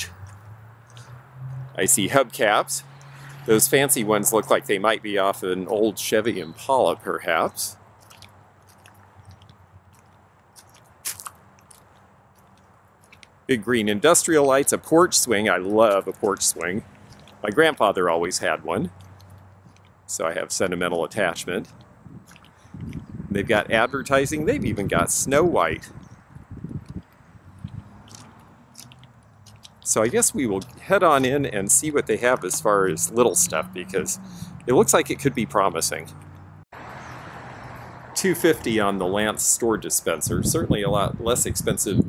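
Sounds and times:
flip-flop footsteps on gravel: 7.2 - 36.5.

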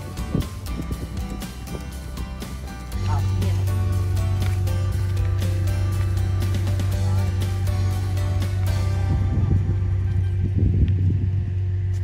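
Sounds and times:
background music with bass tone: 0.0 - 12.0
low rumble: 0.0 - 12.0.

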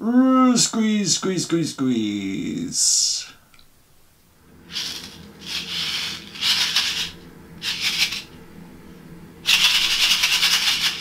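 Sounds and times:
sequins rattling in shaken card: 4.7 - 8.4, 9.4 - 11.0.

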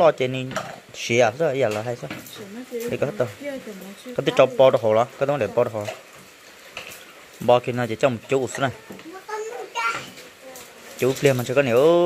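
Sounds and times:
child's voice: 8.8 - 10.9.

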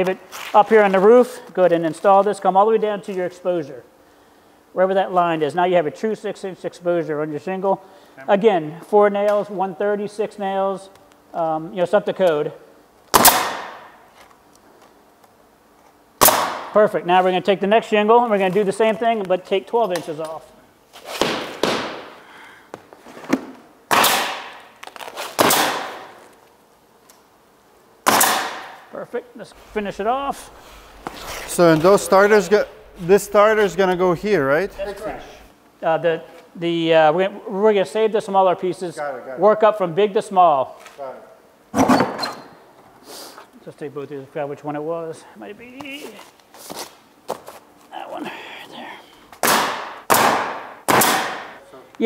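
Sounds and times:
pneumatic nailer firing: 13.1 - 14.0, 16.2 - 16.7, 21.1 - 22.2, 23.9 - 26.3, 28.0 - 28.9, 49.4 - 51.6
man saying a word: 29.6 - 35.5.

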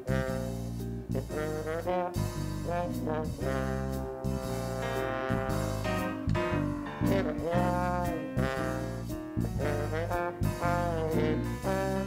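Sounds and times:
jazz band playing swing: 0.0 - 12.0.

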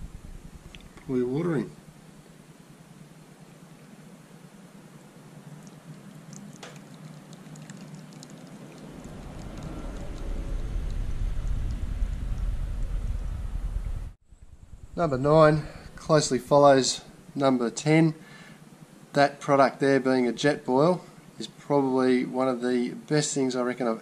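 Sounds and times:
water trickling into a mug: 5.5 - 11.0.

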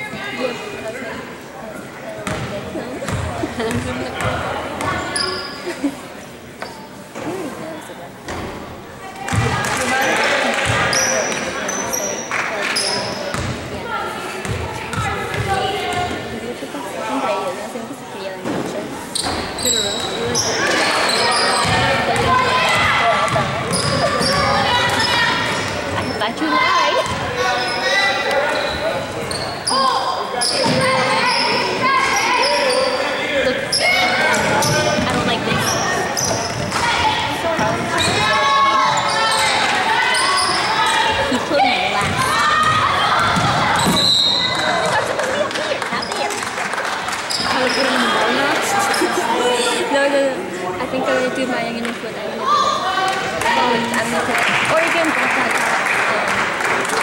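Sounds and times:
shouts and chatter: 0.0 - 57.0.

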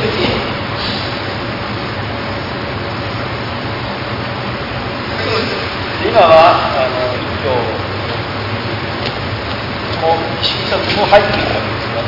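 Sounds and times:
steady recording hiss: 0.0 - 12.0.

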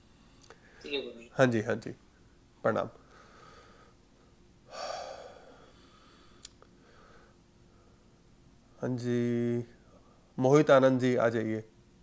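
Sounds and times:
person breathing sharply: 3.0 - 4.0, 4.7 - 8.1.

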